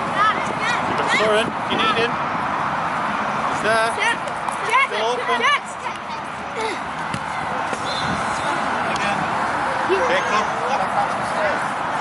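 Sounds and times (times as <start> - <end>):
murmur of distant voices: 0.0 - 12.0
football being kicked: 7.0 - 7.8.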